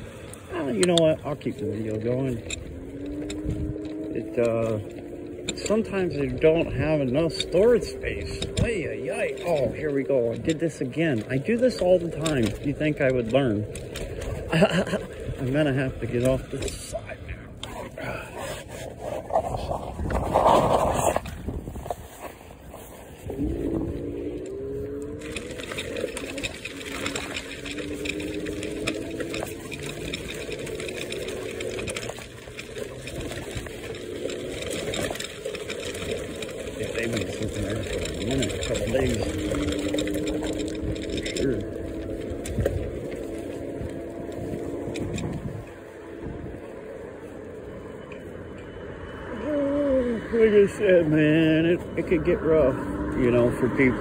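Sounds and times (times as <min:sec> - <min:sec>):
scooter jolting off curb: 0:00.0 - 0:46.6
electric scooter motor whine: 0:00.0 - 0:54.0
tyres rattling on gravel: 0:00.0 - 0:54.0.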